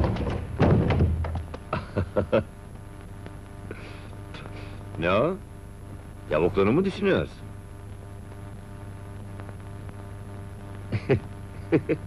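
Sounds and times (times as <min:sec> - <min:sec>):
wooden door thudding open: 0:00.0 - 0:01.6.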